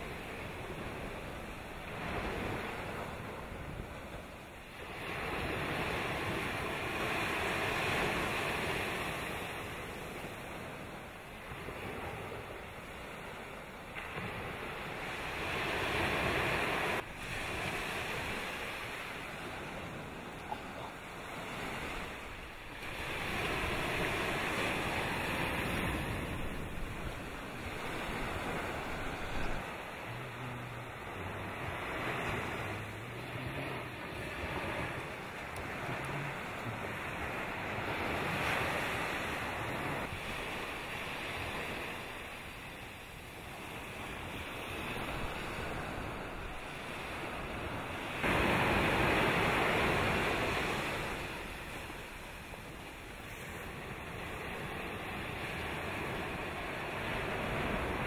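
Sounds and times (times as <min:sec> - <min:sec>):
wind on microphone: 0:00.0 - 0:42.4.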